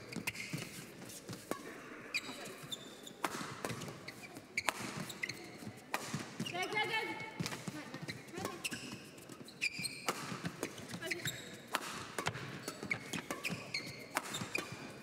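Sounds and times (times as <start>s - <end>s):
shoes squeaking on floor: 0.0s - 15.0s
rackets striking shuttlecock: 3.2s - 6.5s, 9.8s - 15.0s.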